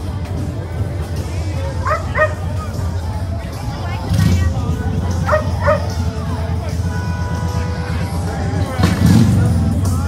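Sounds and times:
crowd chatter: 0.0s - 10.0s
outdoor background music: 0.0s - 10.0s.

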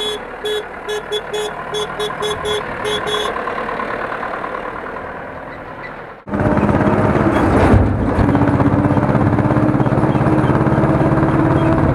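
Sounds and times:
quieter engine sound: 0.0s - 11.9s
tractor diesel engine at full throttle: 0.0s - 11.9s.

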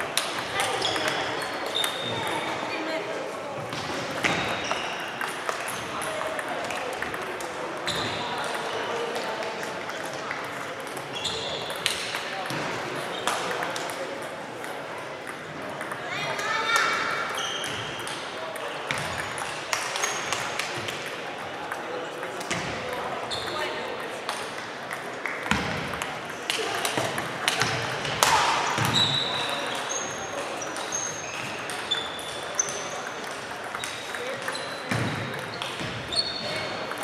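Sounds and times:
background chatter: 0.0s - 37.0s
table tennis balls clicking: 4.2s - 12.6s, 13.2s - 23.0s, 24.2s - 35.9s.

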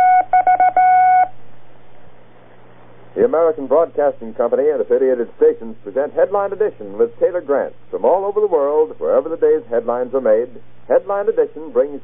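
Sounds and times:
morse code tone: 0.0s - 1.3s
low steady hum: 0.0s - 12.0s.

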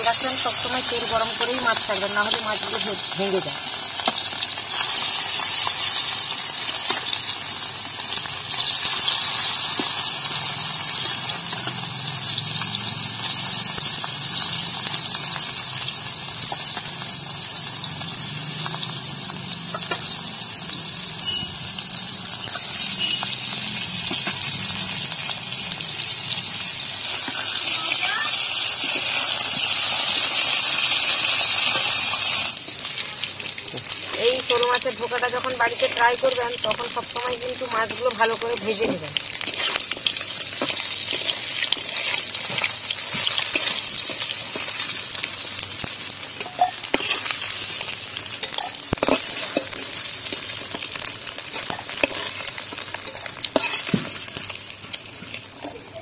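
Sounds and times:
fish sizzling in hot oil: 0.0s - 56.0s.

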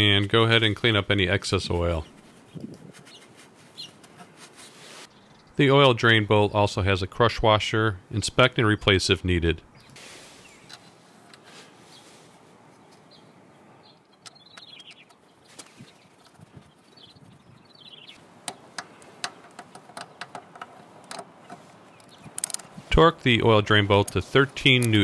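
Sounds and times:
ratchet socket metallic clicks: 22.0s - 22.7s.

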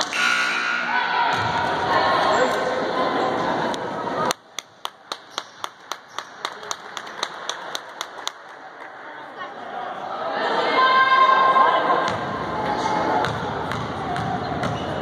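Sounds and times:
people chattering: 0.9s - 15.0s.

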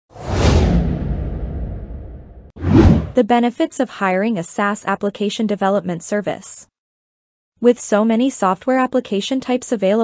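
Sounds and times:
whoosh with low rumble: 0.1s - 3.2s.

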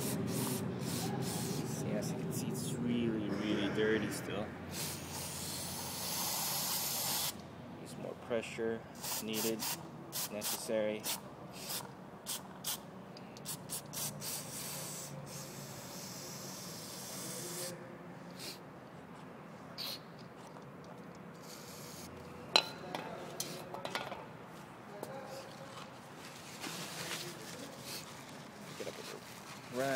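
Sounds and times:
aerosol spray hissing: 0.0s - 1.8s, 4.7s - 7.4s, 9.0s - 12.8s, 13.5s - 17.7s, 21.4s - 22.1s.

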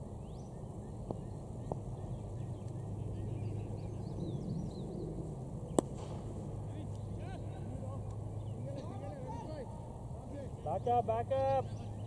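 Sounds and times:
low outdoor rumble: 0.0s - 12.0s
cricket bat striking ball: 5.7s - 6.3s.

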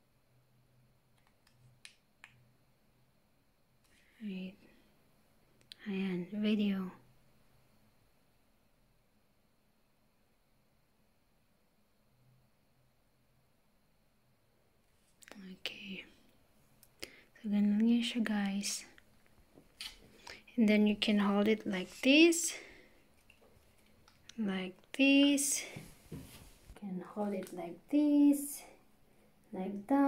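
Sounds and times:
woman speaking softly: 4.2s - 4.7s, 5.7s - 7.0s, 15.3s - 16.2s, 17.4s - 19.0s, 20.5s - 22.7s, 24.3s - 25.8s, 26.8s - 28.8s, 29.5s - 30.0s.

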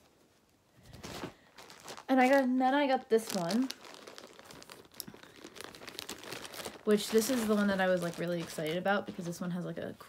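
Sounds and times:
plastic bag crinkling: 0.7s - 9.9s.

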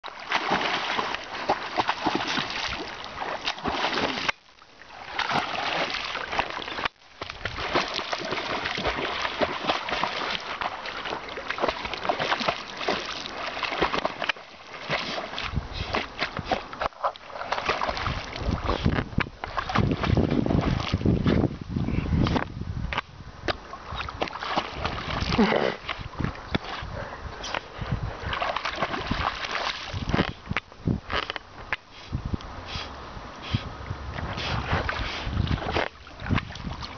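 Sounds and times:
water splashing from swimmer: 0.0s - 21.4s, 24.0s - 26.8s, 28.2s - 30.4s
wind rumble on microphone: 15.4s - 16.8s, 17.6s - 36.9s.

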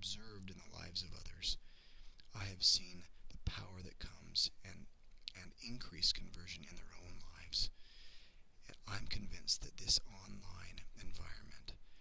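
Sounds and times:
man talking: 0.0s - 1.6s, 2.2s - 7.8s, 8.6s - 11.8s.

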